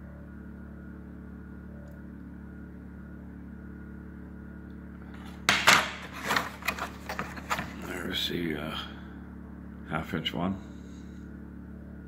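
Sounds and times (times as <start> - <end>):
steady low hum: 0.0 - 12.0
plastic trays clacking together: 5.5 - 7.8.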